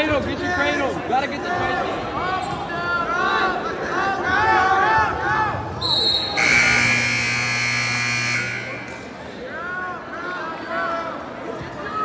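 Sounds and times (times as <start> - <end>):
scoreboard buzzer: 6.4 - 9.0.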